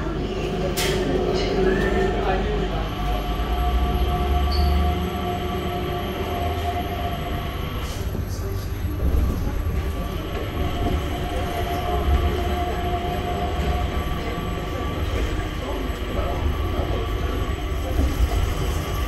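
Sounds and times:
train rumble: 0.0 - 19.0.

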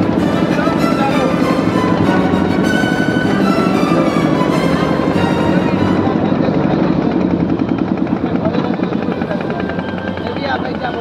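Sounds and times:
background music: 0.0 - 11.0
boat engine running: 0.0 - 11.0.

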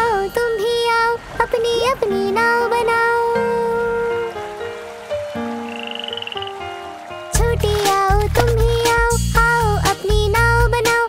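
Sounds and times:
soft instrumental music: 2.1 - 11.0
song with bass: 7.4 - 10.9.

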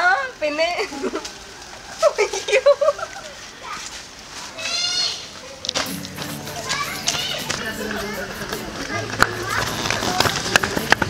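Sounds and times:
young people laughing: 2.0 - 3.4.

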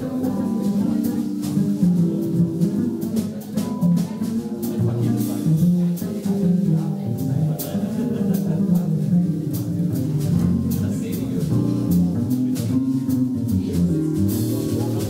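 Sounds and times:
drums with light cymbals: 0.0 - 15.0
plucked upright bass: 0.0 - 15.0.

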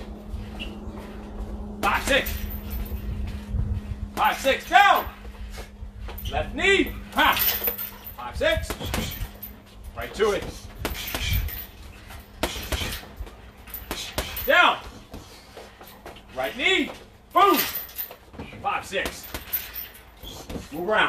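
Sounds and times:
man shouting with exertion: 1.8 - 2.5, 4.2 - 5.2, 6.5 - 7.6, 16.8 - 17.8.

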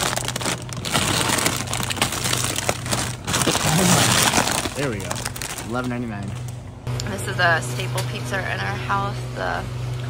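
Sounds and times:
plastic bag crinkling: 0.0 - 6.6
low steady hum: 0.0 - 10.0.

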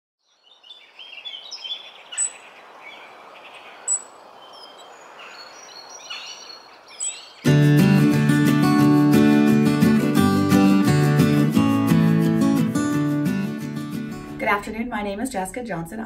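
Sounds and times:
birds chirping and calling: 0.3 - 7.6
strummed acoustic guitar music: 7.4 - 15.3.

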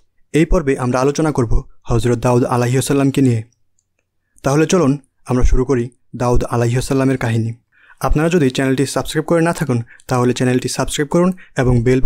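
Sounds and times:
person reading aloud: 0.0 - 3.6, 4.2 - 12.0.

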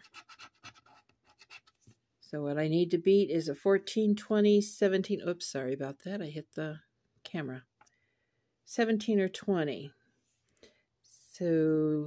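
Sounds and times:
scratching lottery ticket: 0.0 - 1.8.

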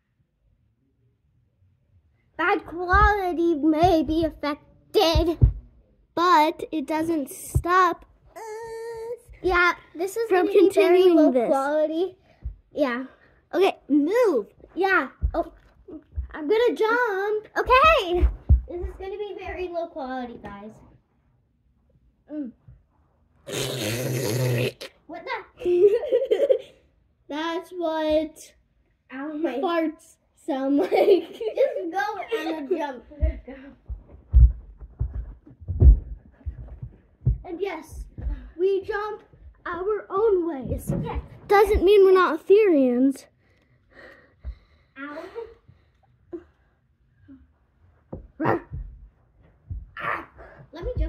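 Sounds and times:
soft thumps on carpet: 5.0 - 5.7, 17.6 - 19.7, 33.2 - 39.6
low rasping fart: 23.5 - 25.0
child barking like a dog: 50.0 - 51.0.

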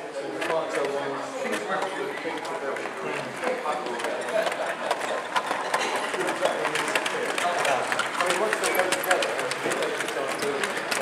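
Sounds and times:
chatter of voices in a hall: 0.0 - 11.0
model train wheels clicking: 3.9 - 11.0.

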